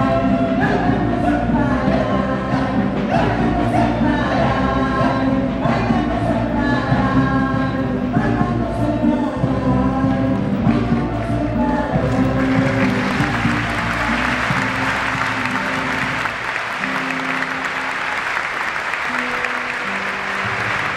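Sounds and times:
folk music with group singing: 0:00.0 - 0:17.5
audience applause: 0:12.1 - 0:20.9.

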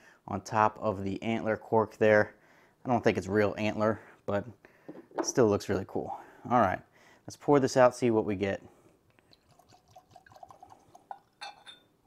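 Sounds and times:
liquid gurgling into glass: 0:09.3 - 0:11.8
glass clinks: 0:11.1 - 0:12.0.

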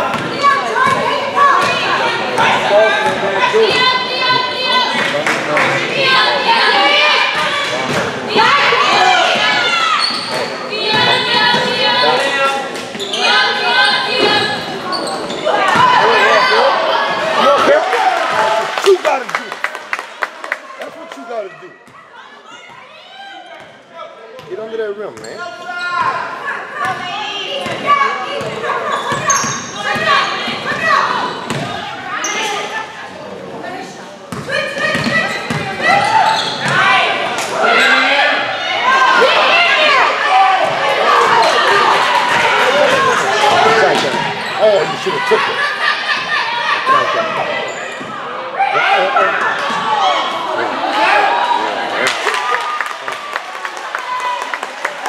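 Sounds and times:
people shouting and talking: 0:00.0 - 0:55.0.

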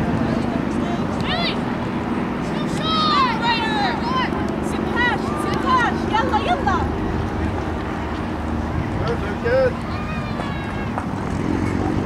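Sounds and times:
distant players shouting: 0:00.9 - 0:01.6, 0:02.4 - 0:07.0, 0:09.6 - 0:11.8.

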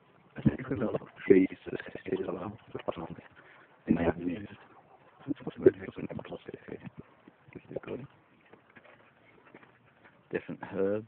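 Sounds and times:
person's voice: 0:00.4 - 0:04.6, 0:05.2 - 0:08.2.

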